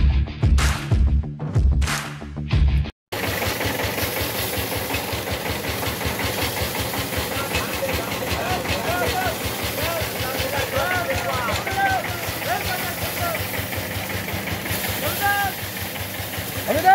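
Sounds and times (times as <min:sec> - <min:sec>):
engine running: 0:03.1 - 0:16.9
threshing drum rattling: 0:03.1 - 0:16.9
voices: 0:06.8 - 0:16.9.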